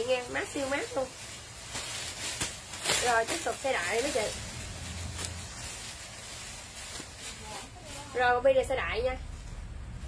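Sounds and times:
cloth rustling: 0:00.0 - 0:10.0.

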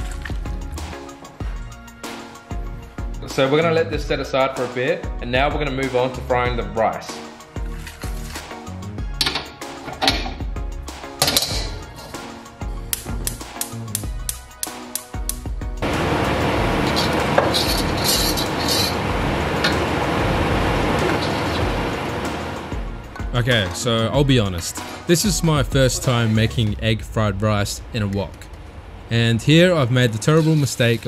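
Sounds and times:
background music: 0:00.0 - 0:31.0
metal cookware clinking: 0:11.2 - 0:12.3, 0:16.7 - 0:19.9
gas burner flame hissing: 0:15.8 - 0:23.1.

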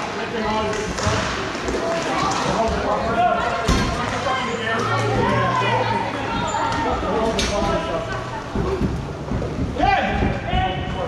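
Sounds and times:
players calling out: 0:01.8 - 0:09.0.

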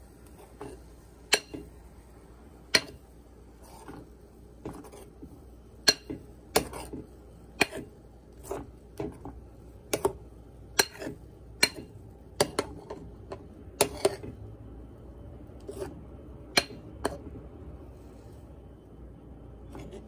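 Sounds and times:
spoon stirring thick batter: 0:00.0 - 0:01.7, 0:02.6 - 0:18.7, 0:19.5 - 0:20.0.

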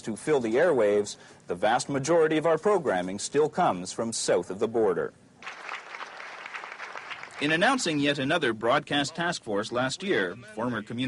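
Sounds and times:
audience applause: 0:05.4 - 0:07.9.

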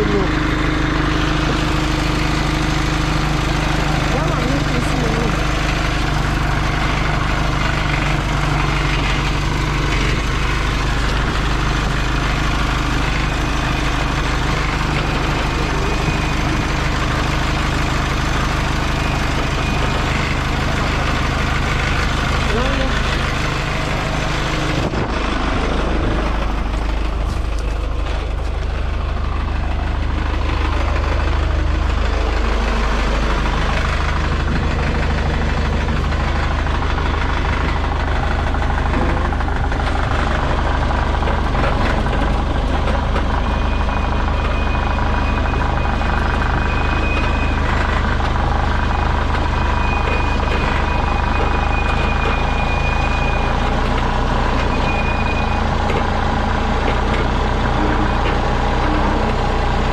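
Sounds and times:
diesel engine running: 0:00.0 - 0:59.9.

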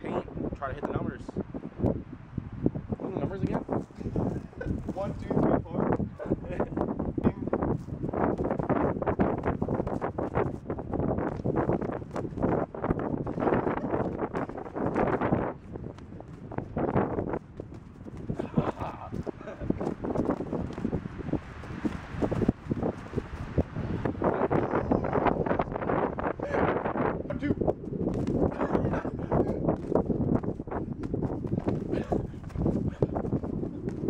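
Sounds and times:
people laughing: 0:04.2 - 0:04.9, 0:06.2 - 0:06.8, 0:18.3 - 0:19.8, 0:28.5 - 0:29.7
people grunting: 0:18.3 - 0:19.8, 0:28.5 - 0:29.7, 0:31.9 - 0:33.2.

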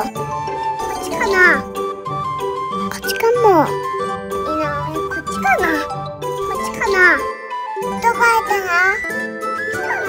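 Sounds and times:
light children's music with chimes: 0:00.0 - 0:10.0.

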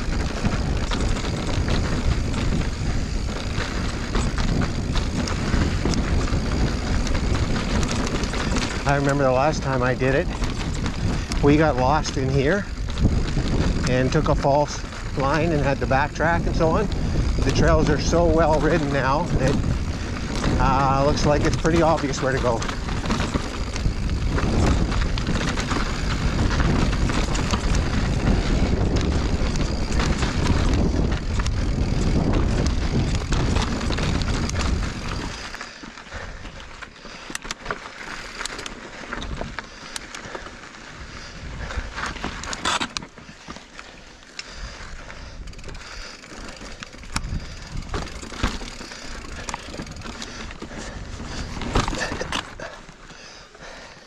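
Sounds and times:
bike clicks knocks and rattles: 0:00.0 - 0:53.2
bike tyre rush on dirt: 0:00.0 - 0:54.0.

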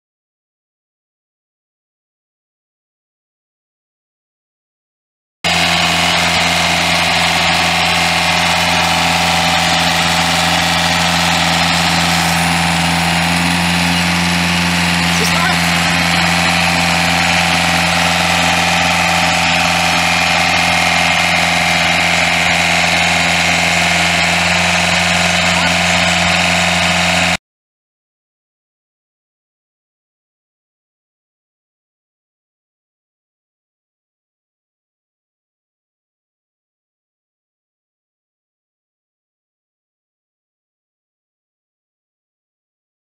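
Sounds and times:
diesel engine running: 0:05.5 - 0:27.4.

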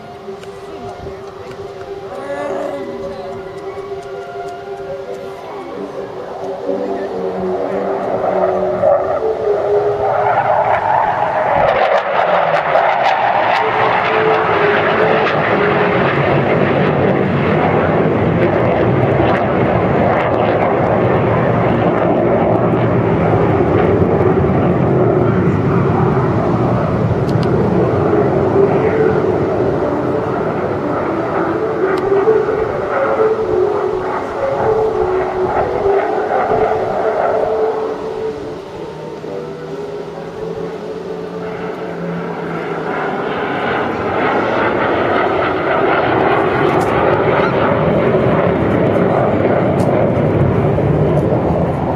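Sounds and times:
jet flying overhead: 0:00.0 - 0:51.9.

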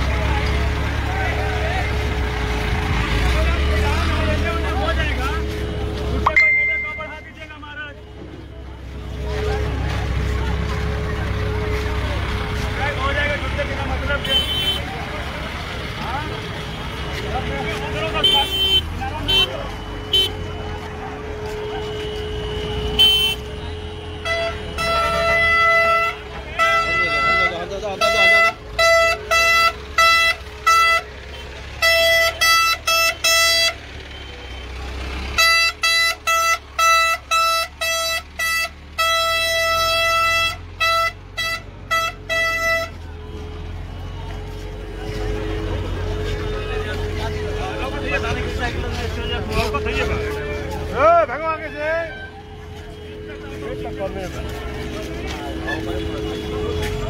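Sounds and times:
crowd voices: 0:00.0 - 0:35.4, 0:37.2 - 0:57.0
vehicle horn honking: 0:14.1 - 0:15.0, 0:18.0 - 0:20.6, 0:21.4 - 0:34.6, 0:35.4 - 0:43.4, 0:51.4 - 0:57.0.

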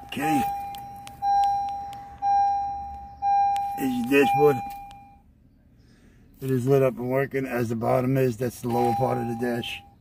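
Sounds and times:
car dashboard warning chime: 0:00.0 - 0:05.3, 0:08.4 - 0:10.0.

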